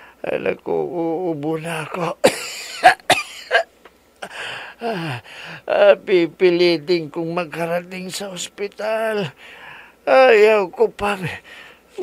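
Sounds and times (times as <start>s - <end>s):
man coughing harshly: 2.2s - 5.2s.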